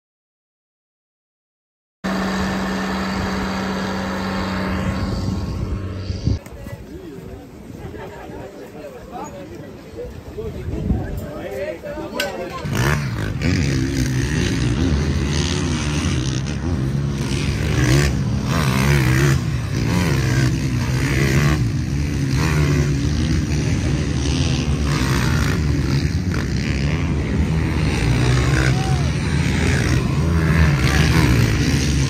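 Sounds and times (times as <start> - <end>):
motorcycle engines revving: 2.0 - 32.0
steady low drone: 2.1 - 6.4.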